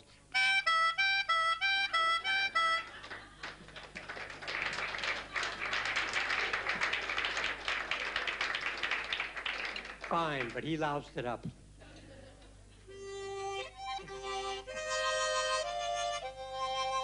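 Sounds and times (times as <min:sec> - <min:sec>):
harmonica playing two notes: 0:00.3 - 0:02.9, 0:12.9 - 0:17.0
audience laughter: 0:02.8 - 0:04.3, 0:11.8 - 0:12.8
audience applause: 0:02.8 - 0:10.8.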